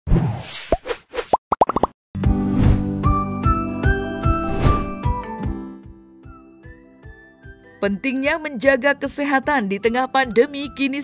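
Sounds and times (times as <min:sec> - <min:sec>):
rising bubble-like pops: 0:01.5 - 0:01.9
short swish: 0:04.4 - 0:05.0.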